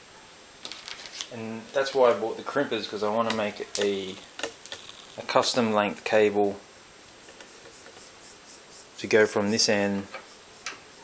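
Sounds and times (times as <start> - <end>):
cable rustling: 3.0 - 5.5.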